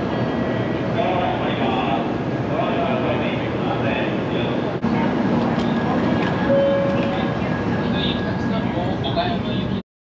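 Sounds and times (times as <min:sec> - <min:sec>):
train rumble: 0:00.0 - 0:09.8
voices on the platform: 0:00.0 - 0:09.8
short held train tones: 0:06.4 - 0:07.4.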